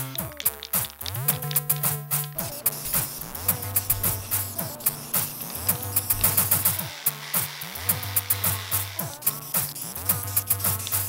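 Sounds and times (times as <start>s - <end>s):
kick drums: 0.0s - 10.9s
hi-hat ticks: 0.0s - 11.0s
sustained synth bass notes: 1.2s - 6.8s.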